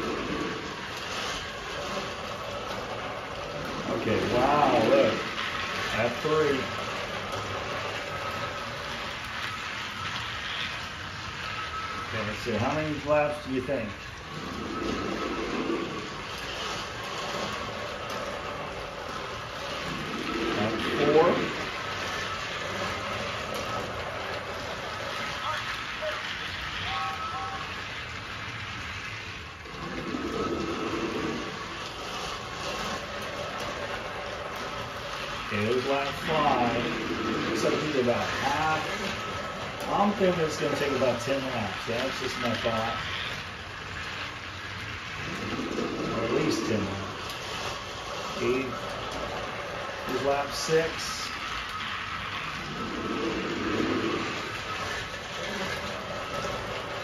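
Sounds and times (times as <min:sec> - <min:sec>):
toy train motors whirring: 0:00.0 - 0:57.0.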